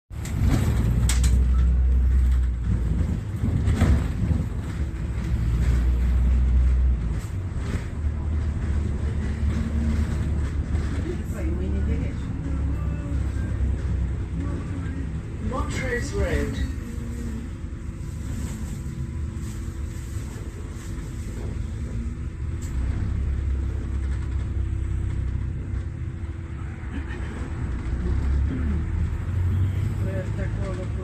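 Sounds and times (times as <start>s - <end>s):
road vehicle rumble inside cabin: 0.1s - 31.0s.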